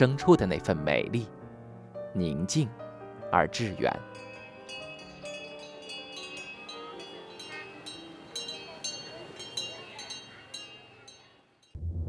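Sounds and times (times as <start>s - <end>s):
metal wind chimes ringing: 3.4s - 11.8s.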